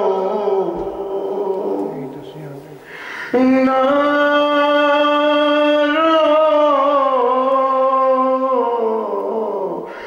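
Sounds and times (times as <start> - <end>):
man singing held note: 0.0 - 10.0.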